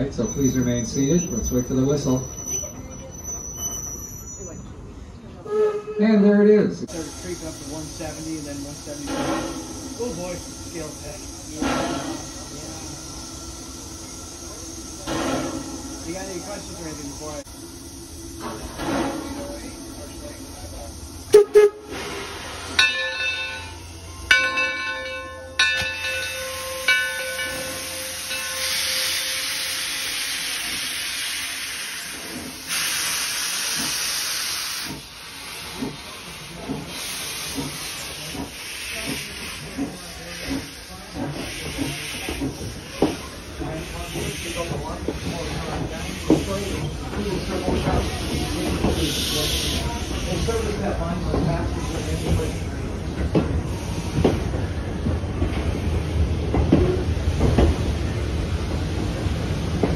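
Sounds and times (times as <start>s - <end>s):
steam hissing: 6.8s - 24.8s, 25.8s - 59.9s
train wheels clicking: 18.3s - 59.9s
steam whistle blasts: 21.3s - 22.2s.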